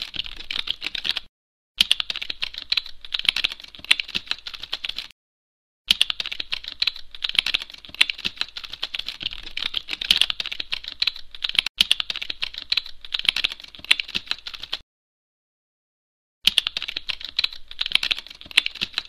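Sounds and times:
keyboard typing: 0.0 - 5.1, 5.9 - 14.8, 16.5 - 19.0.

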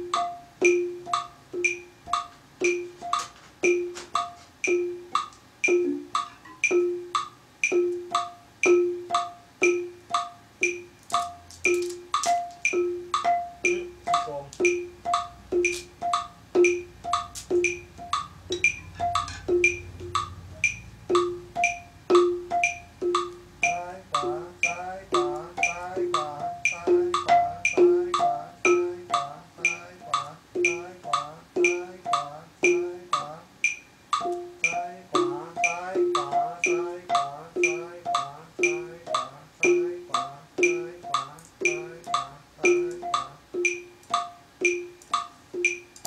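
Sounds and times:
wooden xylophone played with mallets: 0.0 - 46.0.

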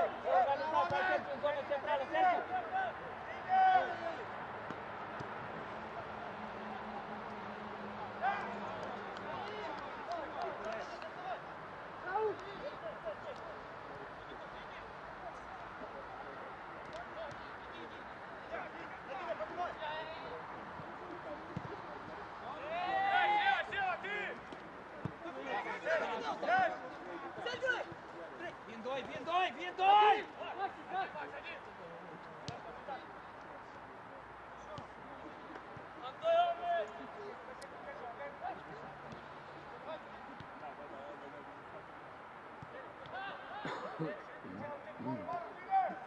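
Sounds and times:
people shouting calls: 0.0 - 4.3, 22.4 - 24.4, 29.1 - 31.4.

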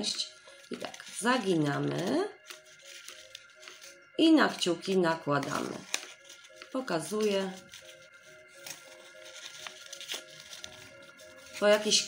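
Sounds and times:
quiet background music: 0.0 - 12.0
tissue paper crinkling: 0.1 - 12.0.

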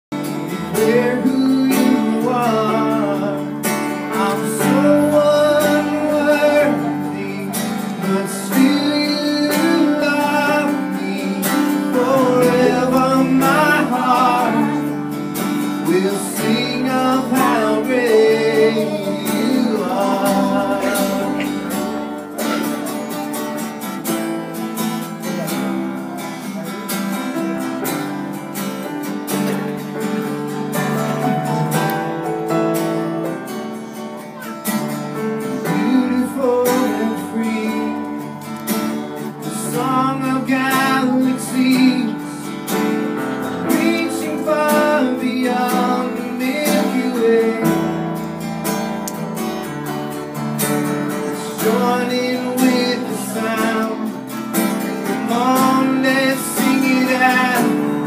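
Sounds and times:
person singing: 0.1 - 23.5, 33.2 - 48.2, 51.0 - 58.0
strummed acoustic guitar: 0.1 - 58.0.

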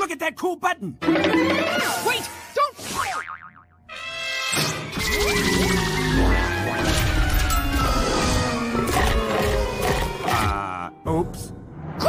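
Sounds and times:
music: 3.9 - 11.7.

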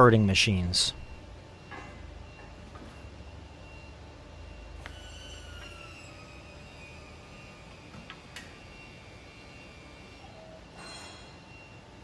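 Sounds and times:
faint machine drive hum: 0.0 - 10.8.

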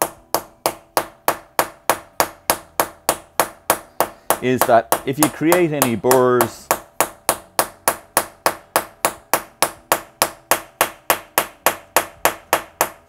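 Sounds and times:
hammer tapping metal: 0.0 - 13.0.

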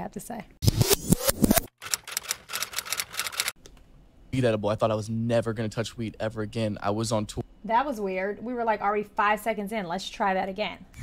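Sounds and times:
typewriter key clicks: 1.8 - 3.5.

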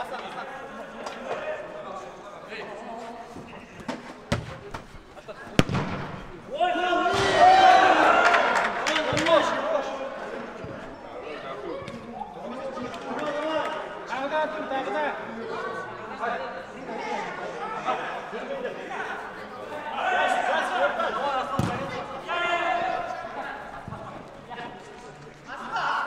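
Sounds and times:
ball being kicked: 3.8 - 4.9, 5.5 - 6.4, 21.6 - 22.1
players shouting: 5.4 - 12.9, 17.1 - 24.3.

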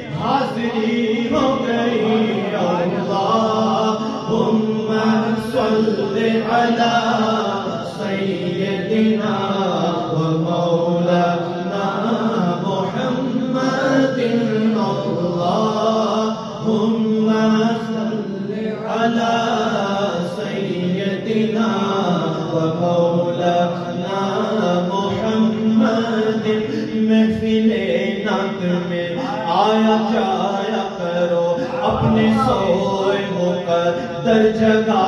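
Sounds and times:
voices chanting melodically: 0.0 - 10.3, 23.8 - 35.0.

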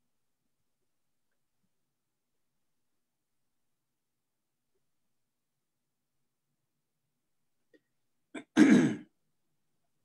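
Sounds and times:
person clearing throat: 8.4 - 9.1.

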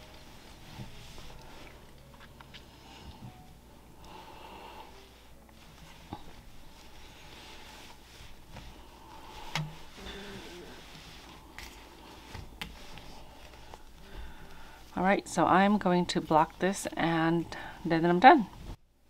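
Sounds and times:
rustling of knit fabric: 0.0 - 3.7, 4.9 - 18.8.

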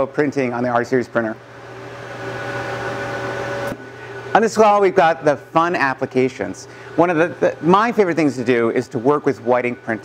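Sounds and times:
mechanical whir with faint hum: 0.0 - 10.0.

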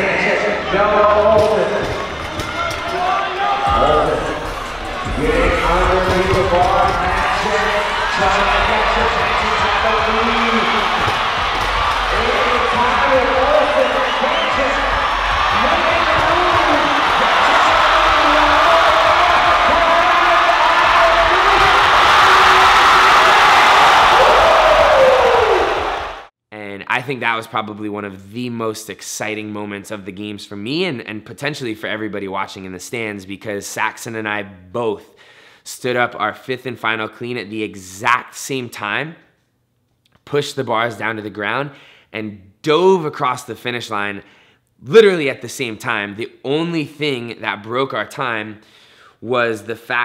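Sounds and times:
crowd cheering: 0.0 - 26.3.

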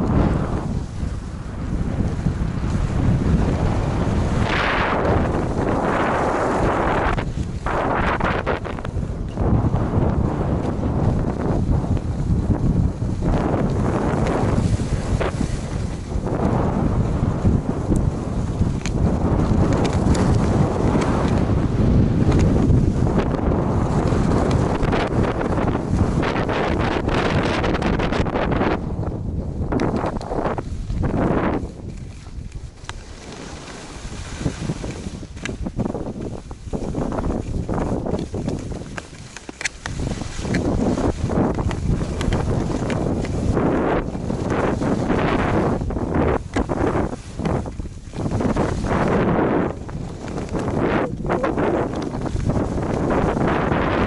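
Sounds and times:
skis scraping on snow: 0.0 - 54.0
wind buffeting microphone: 0.0 - 54.0.

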